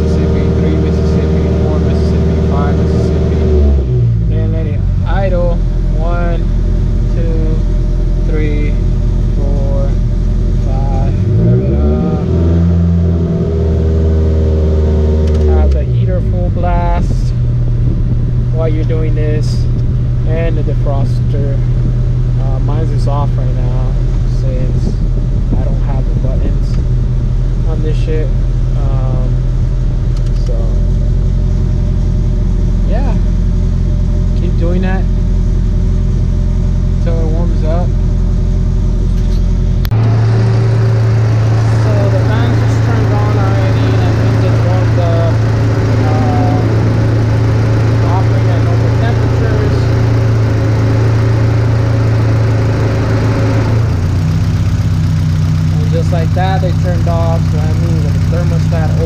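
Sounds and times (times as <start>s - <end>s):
car engine running: 0.0s - 59.0s.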